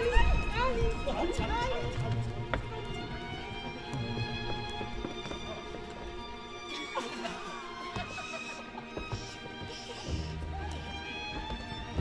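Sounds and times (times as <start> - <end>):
footsteps on wooden stage: 0.0 - 12.0.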